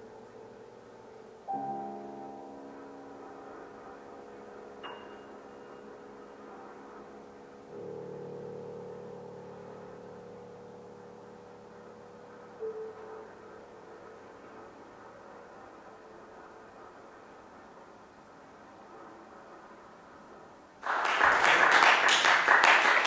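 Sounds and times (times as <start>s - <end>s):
grand piano notes ringing: 0.0s - 20.7s.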